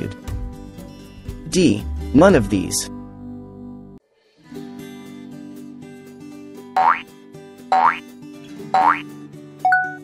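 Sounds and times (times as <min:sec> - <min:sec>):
light background music: 0:00.0 - 0:10.0
rising boing sound effects: 0:08.8 - 0:09.0.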